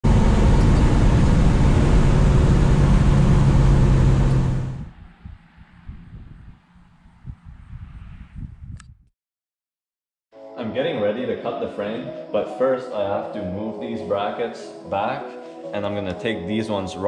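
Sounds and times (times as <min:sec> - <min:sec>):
pickup engine droning: 0:00.0 - 0:05.0
road and wind noise: 0:00.0 - 0:09.0.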